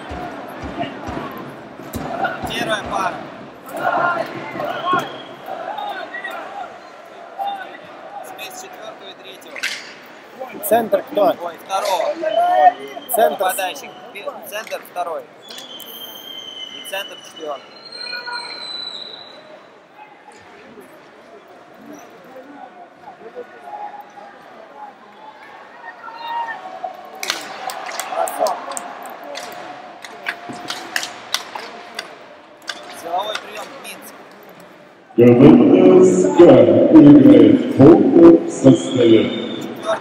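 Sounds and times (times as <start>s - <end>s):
crowd murmur: 0.0s - 40.0s
hockey sticks and puck clacking: 9.6s - 10.0s, 27.2s - 34.4s.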